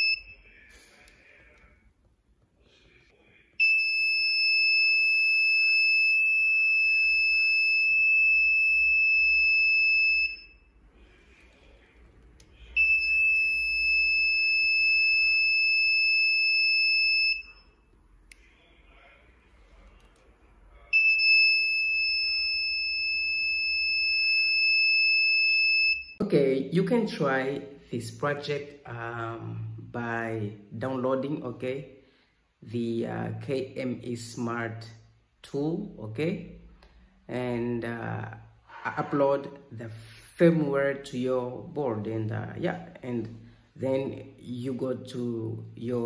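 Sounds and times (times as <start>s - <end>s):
electronic buzzer tone: 0.0s - 0.5s, 12.8s - 17.8s, 20.9s - 26.2s.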